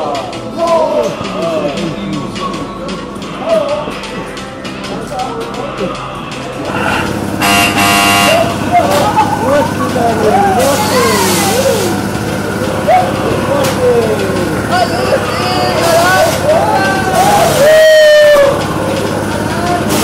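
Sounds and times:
roundabout ride humming: 0.0s - 20.0s
horn toot: 6.7s - 9.0s
voices whooping: 8.3s - 20.0s.

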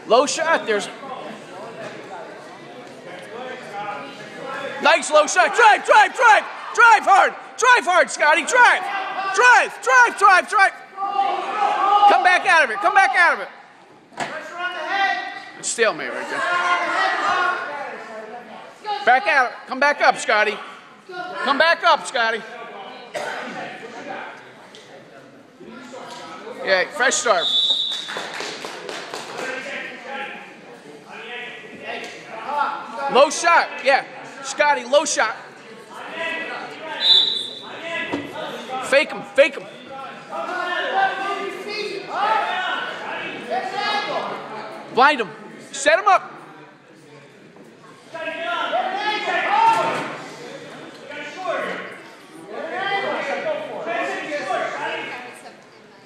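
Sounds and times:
man shouting: 4.9s - 13.4s.

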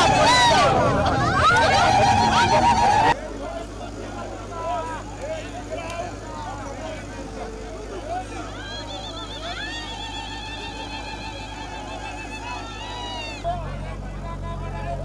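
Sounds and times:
crowd voices: 0.0s - 15.0s
diesel engine idling: 0.0s - 15.0s
wavering sung voices: 0.0s - 15.0s.

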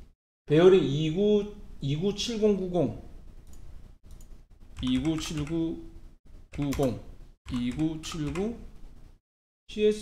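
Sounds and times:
computer clicking: 3.4s - 5.7s, 6.5s - 8.5s.

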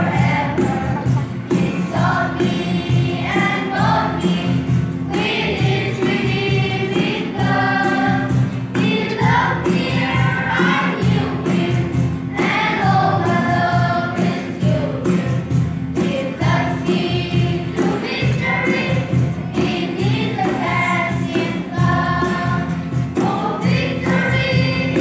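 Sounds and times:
children's choir singing a hymn: 0.0s - 25.0s.

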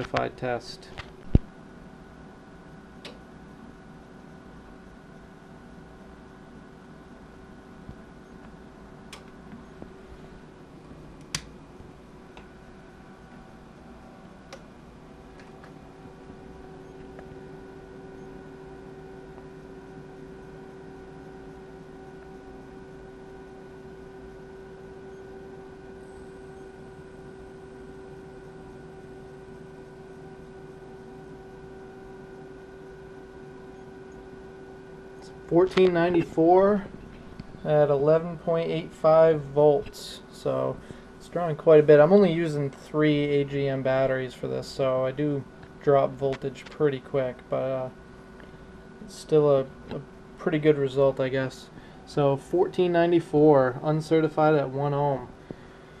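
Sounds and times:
faint whining tones: 0.0s - 56.0s
low steady hum: 0.0s - 56.0s
sharp clicks: 11.2s - 11.5s.

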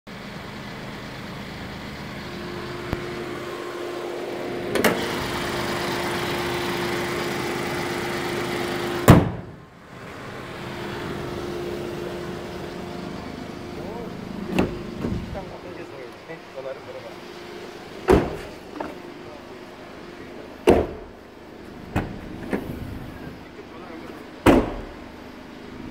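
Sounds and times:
car engine idling: 0.1s - 25.9s
loud slam: 9.1s - 9.6s, 24.4s - 25.0s.

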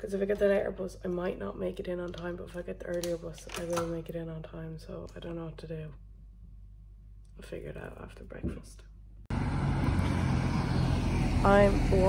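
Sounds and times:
cars going by: 9.3s - 12.0s.

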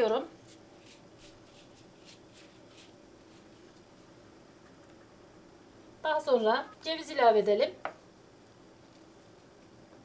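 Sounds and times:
dry pastry strands rustling: 0.4s - 3.8s.

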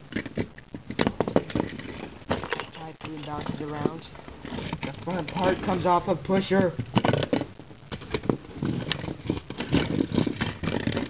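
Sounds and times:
sharp clicks and knocks: 0.0s - 11.0s
plastic models scraping on cardboard: 0.1s - 11.0s.

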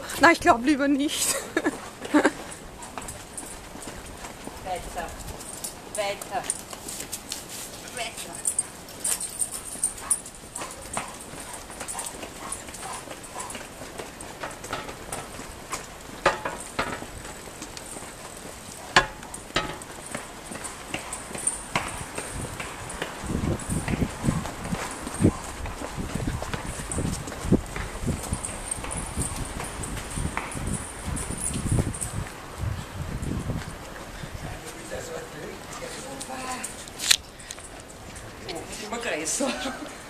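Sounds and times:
footsteps on pavement: 0.0s - 40.0s.

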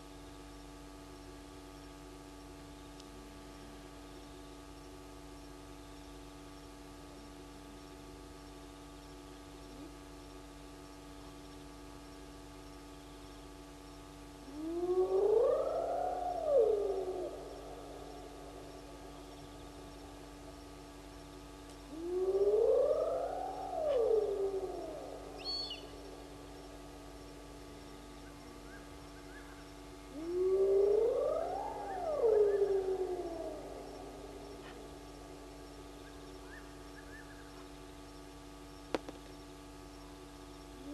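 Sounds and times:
faint steady hum: 0.0s - 40.9s
animal call rising in pitch: 14.6s - 18.3s, 21.9s - 26.1s, 30.1s - 34.9s.

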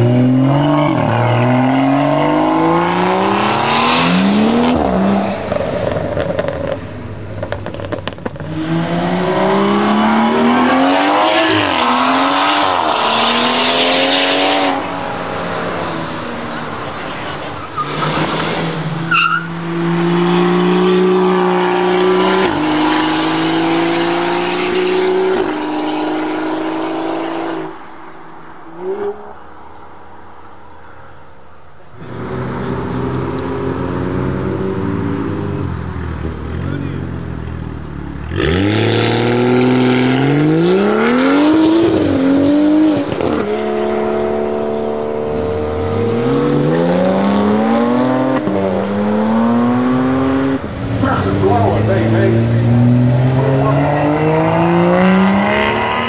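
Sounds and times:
car engine accelerating hard: 32.0s - 56.0s.

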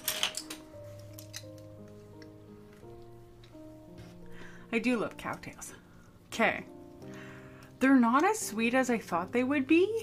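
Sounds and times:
soft music of held notes: 0.0s - 10.0s.

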